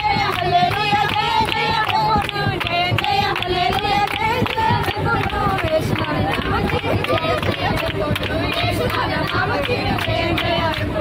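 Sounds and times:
rhythmic clapping: 0:00.0 - 0:11.0
women and girls singing: 0:00.0 - 0:11.0.

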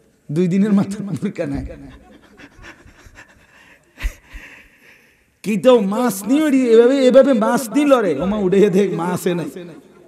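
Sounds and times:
man laughing quietly: 0:01.9 - 0:04.8.

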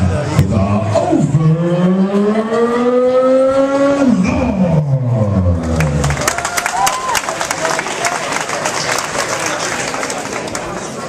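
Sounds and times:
applause: 0:05.8 - 0:11.0.

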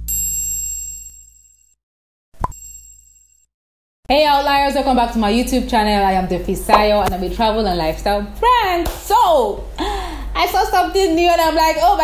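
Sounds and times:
rising pop: 0:06.7 - 0:07.2.

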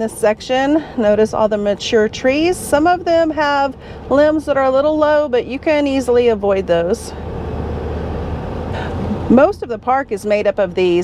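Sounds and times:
tyre and road noise: 0:00.0 - 0:11.0
vehicle engine drone: 0:00.0 - 0:11.0.

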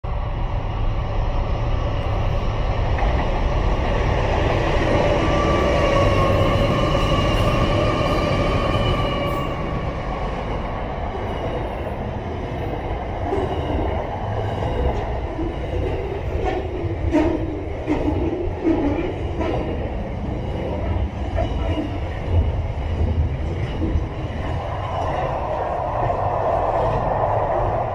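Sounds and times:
freight train rumble: 0:00.0 - 0:27.9.

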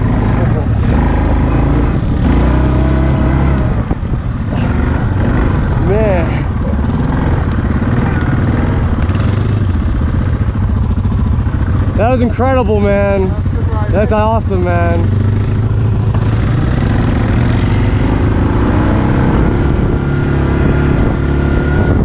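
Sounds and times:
atv engine running: 0:00.0 - 0:22.0.

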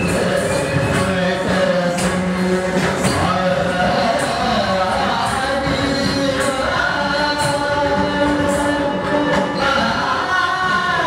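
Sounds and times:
person singing long notes: 0:00.0 - 0:11.0.

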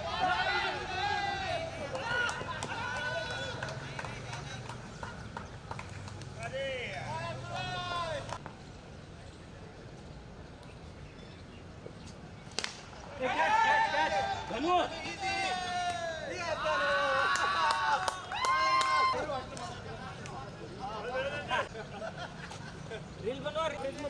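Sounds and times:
players shouting: 0:00.0 - 0:04.6, 0:06.4 - 0:08.4, 0:13.0 - 0:21.7
bat hitting ball crack: 0:12.5 - 0:13.0.

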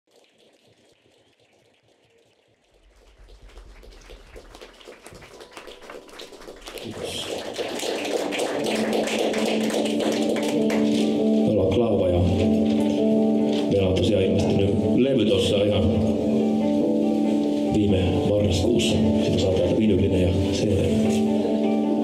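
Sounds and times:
band playing sustained notes: 0:08.1 - 0:22.0.

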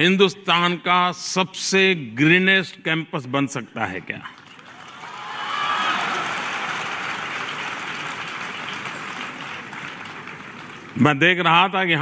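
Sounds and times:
large audience applauding: 0:04.2 - 0:11.1.

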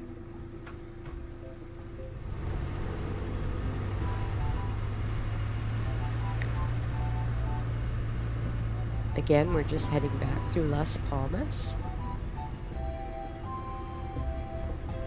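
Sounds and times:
background music: 0:00.0 - 0:15.0
car driving: 0:00.0 - 0:15.0.

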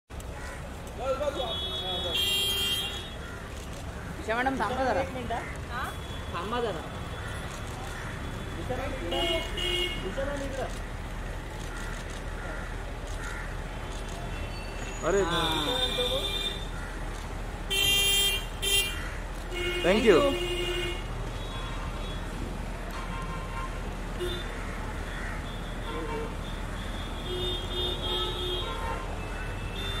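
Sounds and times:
low traffic rumble: 0:00.1 - 0:30.0
vehicle horn toots: 0:01.4 - 0:03.2, 0:17.7 - 0:22.3, 0:25.8 - 0:30.0.

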